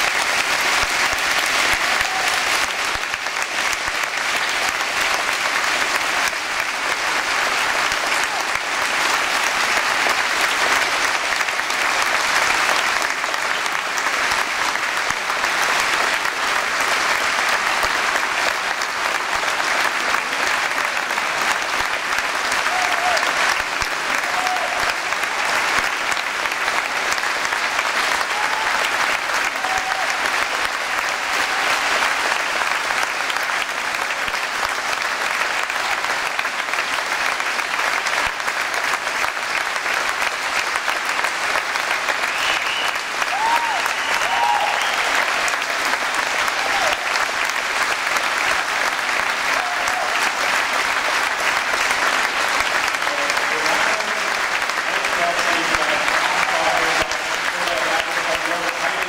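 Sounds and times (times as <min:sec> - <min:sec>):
audience applauding: 0:00.0 - 0:59.0.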